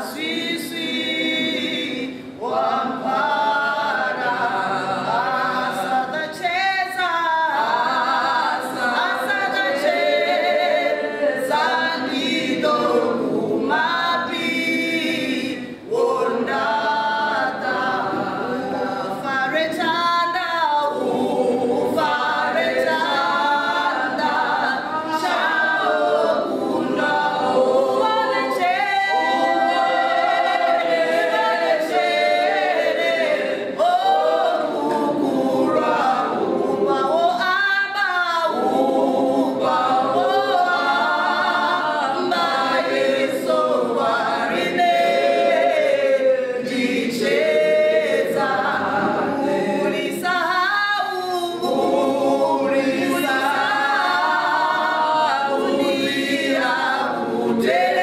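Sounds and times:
women singing unaccompanied: 0.0 - 58.0.

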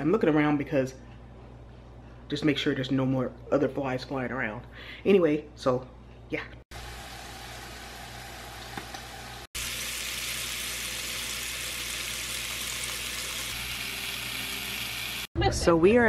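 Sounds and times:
meat sizzling on electric grill: 6.8 - 15.3.

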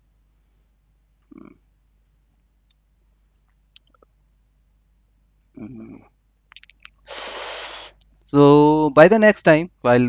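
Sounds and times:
faint clicks: 2.0 - 2.8.

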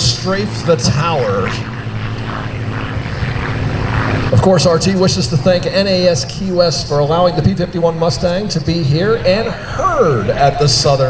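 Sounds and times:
propeller plane engine drone: 0.0 - 11.0.

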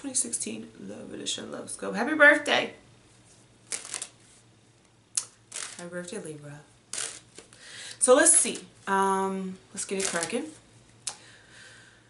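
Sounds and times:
cards being shuffled: 3.3 - 4.4, 5.2 - 5.9, 6.9 - 7.6, 9.9 - 10.6.

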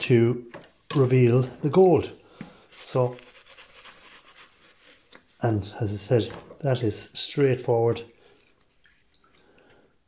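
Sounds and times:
person speaking: 0.0 - 3.4, 5.3 - 8.2
faint scratching and rustling: 2.6 - 5.6.

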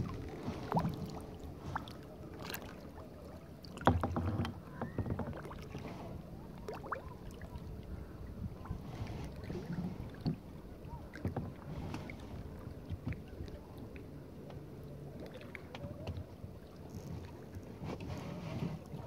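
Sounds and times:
small splashes: 0.0 - 7.6
water lapping around kayak: 0.0 - 19.0.

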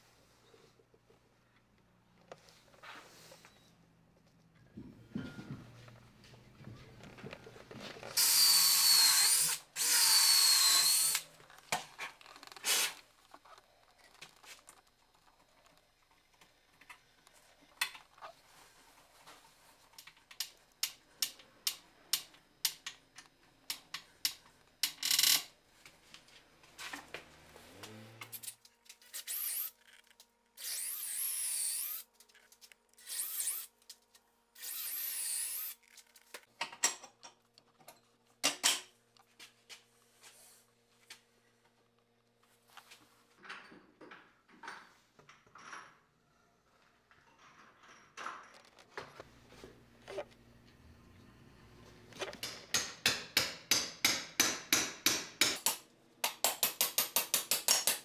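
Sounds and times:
power drill whining: 8.2 - 11.2, 29.1 - 29.7, 30.6 - 32.0, 33.0 - 33.7, 34.6 - 35.8.

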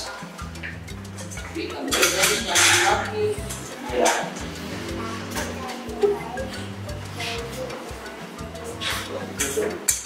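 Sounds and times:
background music with bass line: 0.0 - 10.0.

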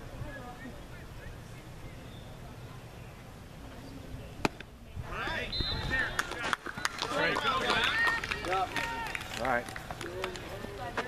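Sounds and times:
people calling out and chattering: 0.0 - 11.0.

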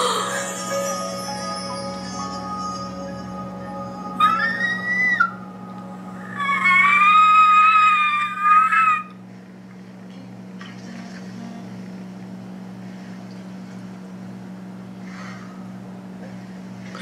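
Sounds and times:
woman squealing with excitement: 6.2 - 9.1.

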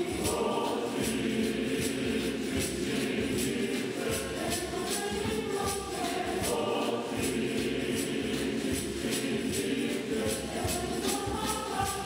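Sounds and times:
church choir singing: 0.0 - 12.0
high percussive rattle: 0.0 - 12.0.

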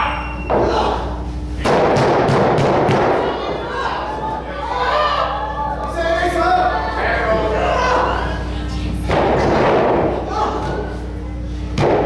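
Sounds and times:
crowd voices: 2.6 - 11.9.

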